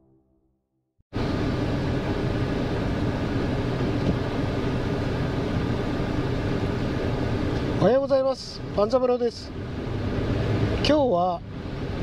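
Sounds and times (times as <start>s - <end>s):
car engine hum: 1.2s - 12.0s.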